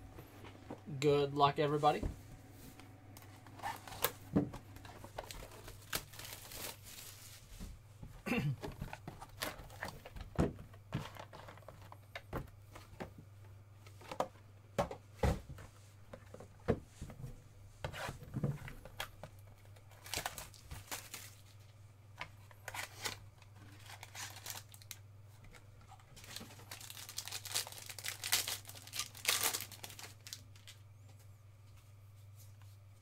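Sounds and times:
plastic wrapper tearing and crinkling: 4.9 - 7.2, 20.0 - 21.5, 22.7 - 25.0, 26.2 - 30.8.

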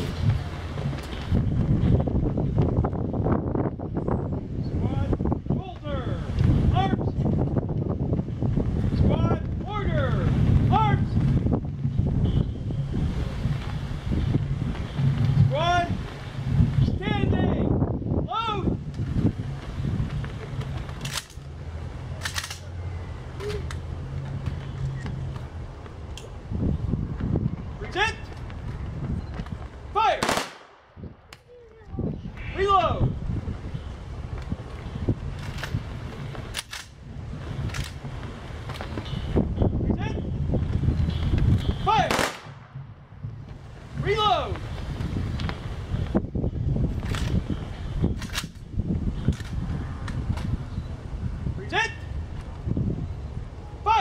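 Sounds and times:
shouted drill commands: 9.1 - 11.2, 16.9 - 18.8, 29.9 - 30.2, 41.8 - 42.1, 44.0 - 44.6, 53.7 - 54.0
rifle volleys: 22.2 - 22.7, 30.2 - 30.8.

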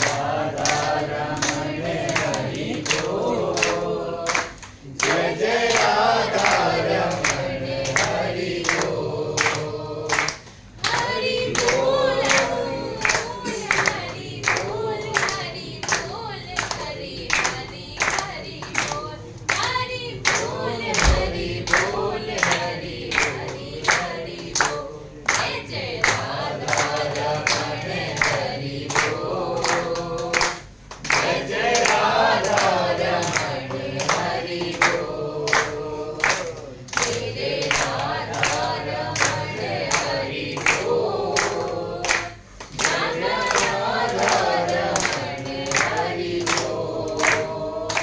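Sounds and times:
group singing devotional song: 0.0 - 48.0
rhythmic hand clapping: 0.0 - 48.0.

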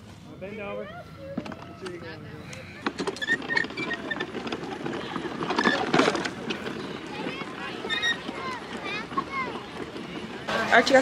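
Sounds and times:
wagon wheels rattling over grass: 1.2 - 11.0.

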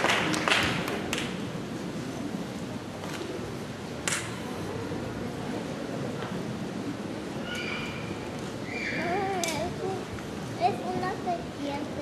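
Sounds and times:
audience murmur and rustle: 0.0 - 12.0.

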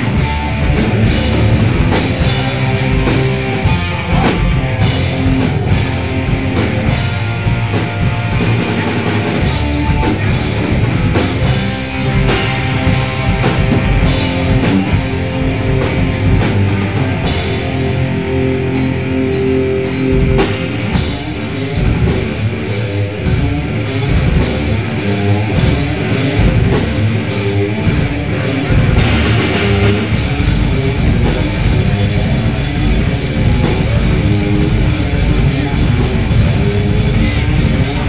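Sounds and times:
heavy metal band playing: 0.0 - 38.0.

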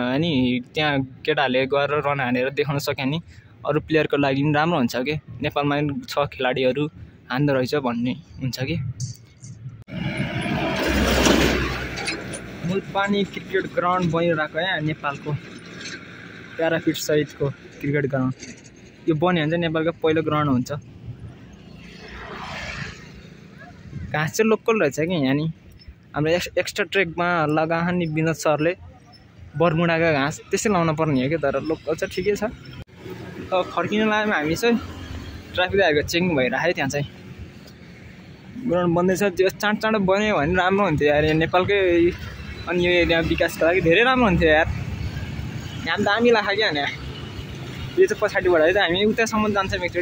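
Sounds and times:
distant engine passing by: 9.9 - 19.8.

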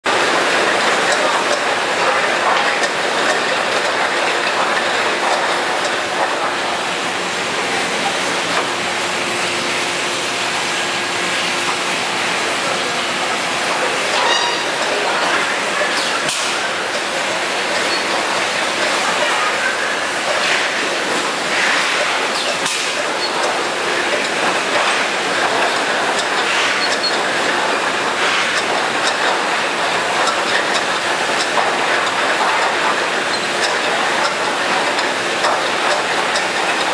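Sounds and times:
mechanical clatter of conveyors: 0.1 - 8.8, 11.4 - 36.9.

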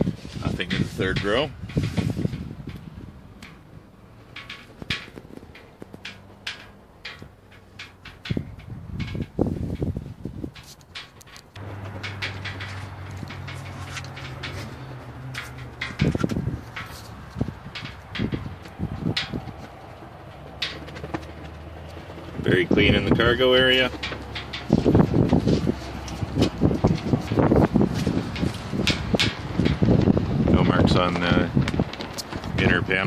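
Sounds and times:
clicks and knocks: 0.6 - 32.6.

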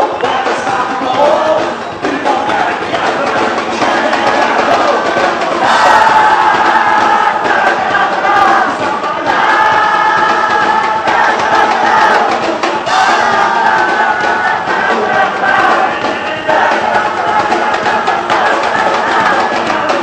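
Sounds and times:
crowd chanting in unison: 0.0 - 20.0
live band music: 0.0 - 20.0.

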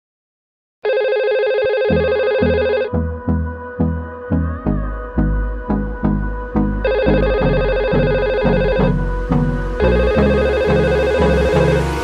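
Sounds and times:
electronic telephone ringing: 0.8 - 2.9, 6.9 - 8.9
background music with steady beat: 1.9 - 12.0.

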